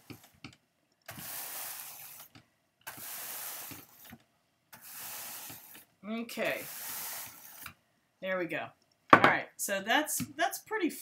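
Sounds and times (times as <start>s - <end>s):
hand brush stroking wool fibres: 2.9s - 4.1s, 4.8s - 7.7s.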